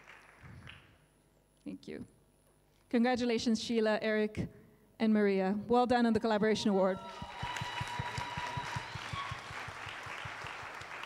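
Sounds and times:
audience applauding: 0:00.0 - 0:00.8, 0:07.0 - 0:11.0.

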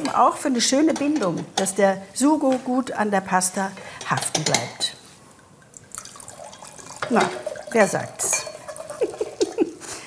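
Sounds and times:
spaghetti dripping and squelching: 0:05.4 - 0:09.8.

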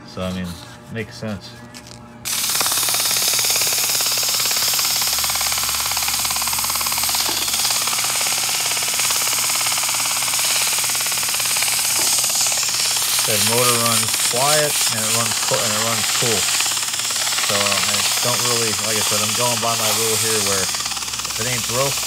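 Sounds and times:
fan motor humming: 0:00.0 - 0:22.0
sandpaper hissing on spinning shaft: 0:02.3 - 0:22.0.

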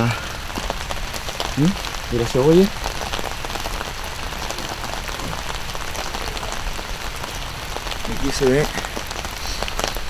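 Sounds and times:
steady rain pattering: 0:00.0 - 0:10.0.

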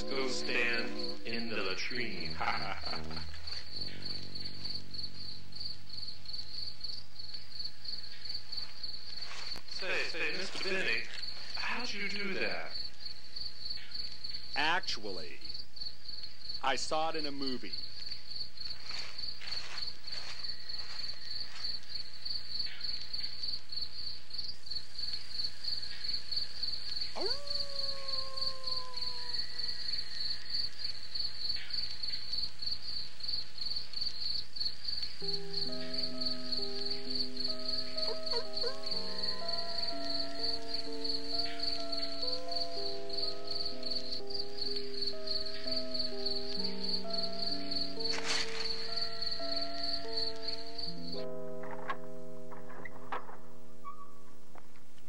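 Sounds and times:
slow music of long held notes: 0:00.0 - 0:06.3, 0:27.1 - 0:29.8, 0:35.0 - 0:55.0
crickets chirping: 0:00.0 - 0:54.4.

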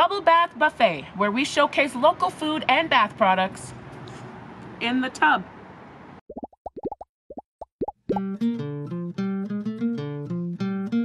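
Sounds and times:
bubble-pop plops rising in pitch: 0:06.3 - 0:08.4
acoustic guitar picking: 0:08.2 - 0:11.0.

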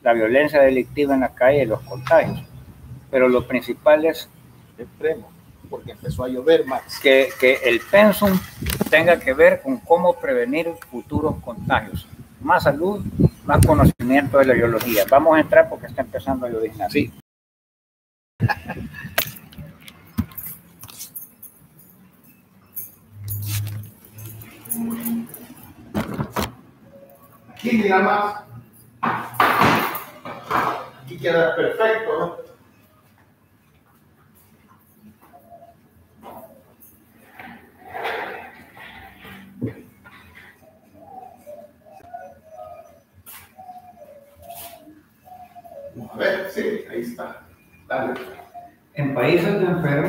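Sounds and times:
bird cooing: 0:26.9 - 0:27.6, 0:35.0 - 0:47.0, 0:47.6 - 0:49.3.

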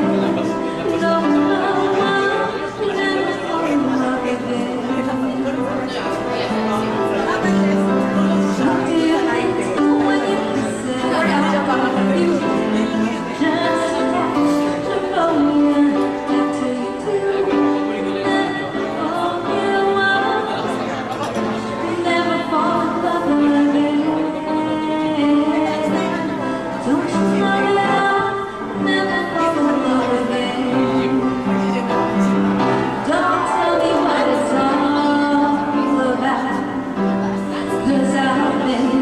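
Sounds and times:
live instrumental accompaniment: 0:00.0 - 0:39.0
people chatting: 0:00.0 - 0:39.0
woman singing long note: 0:33.1 - 0:36.2.

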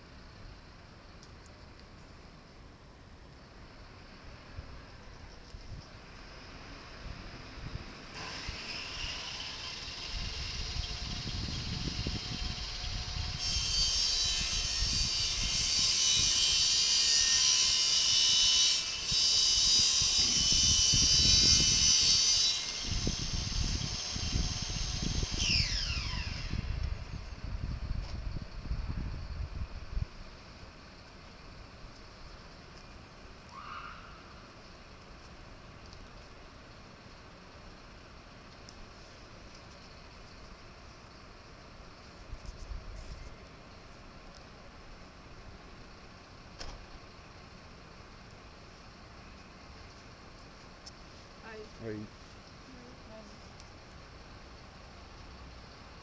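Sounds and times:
quiet street background: 0:00.0 - 0:56.0
long loud hiss: 0:06.0 - 0:32.4.

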